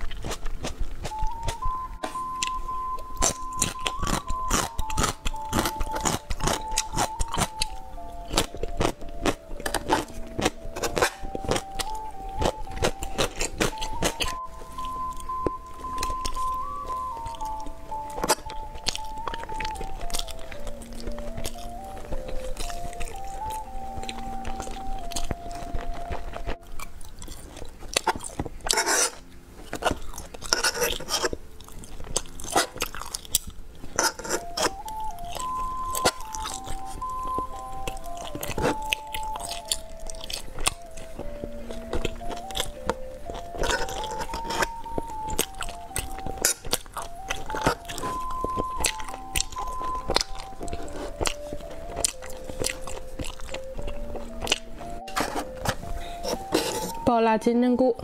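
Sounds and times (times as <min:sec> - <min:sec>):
chewing gummy candies: 0:00.0 - 0:57.8
plinking background melody: 0:01.0 - 0:58.0
wet mouth clicks: 0:02.3 - 0:57.0.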